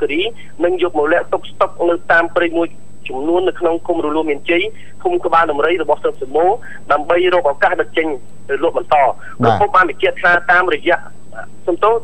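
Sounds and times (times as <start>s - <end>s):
narrator talking: 9.4s - 9.8s.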